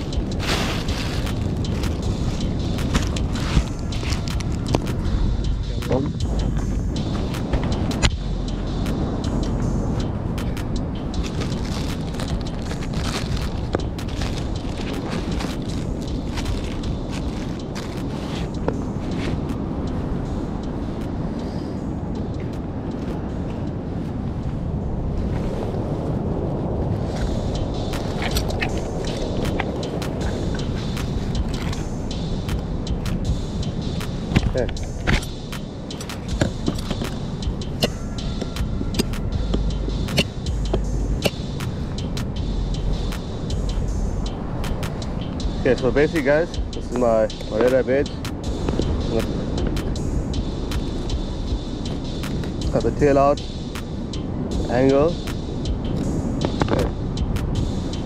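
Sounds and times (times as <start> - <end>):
clothing rustling on microphone: 0.0 - 4.9, 11.2 - 19.5, 23.1 - 31.9
low rumble: 0.0 - 21.3, 23.4 - 54.9
heavy bumps: 27.1 - 53.1.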